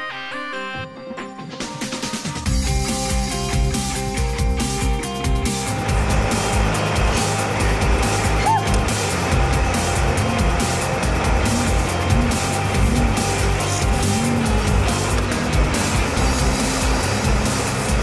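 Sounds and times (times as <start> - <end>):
background music with steady beat: 0.1 - 18.0
vehicle engine driving over snow: 5.6 - 18.0.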